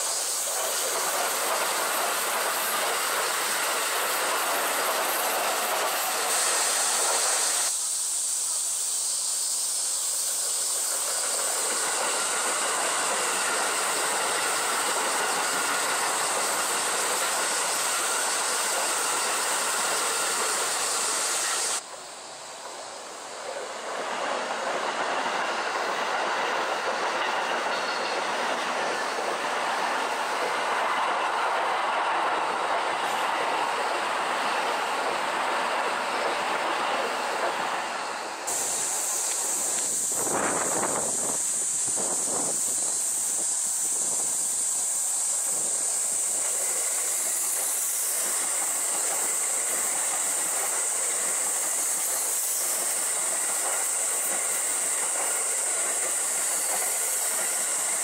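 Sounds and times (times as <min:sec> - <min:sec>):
high hiss: 0:00.0 - 0:58.0
train approaching and passing: 0:00.0 - 0:58.0
train wheels rolling on rails: 0:00.0 - 0:58.0.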